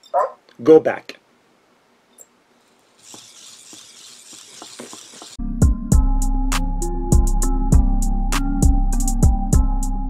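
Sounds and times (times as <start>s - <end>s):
servo motors whirring: 2.8s - 5.4s
intro music with steady beat: 5.4s - 10.0s.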